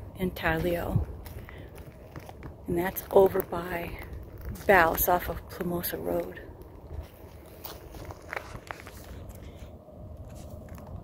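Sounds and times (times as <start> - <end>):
footsteps on gravel: 0.1 - 11.0.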